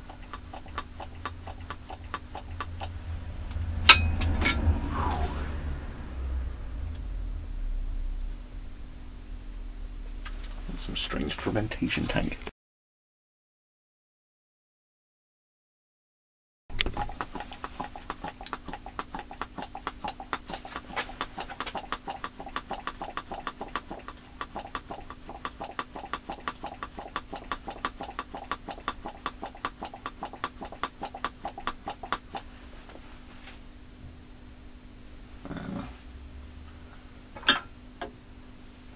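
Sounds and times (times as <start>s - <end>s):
low hum: 0.0s - 11.8s.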